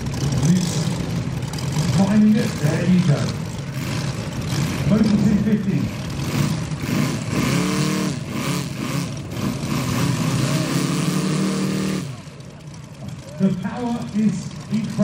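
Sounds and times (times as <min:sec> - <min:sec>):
model plane engines running: 0:00.0 - 0:15.0.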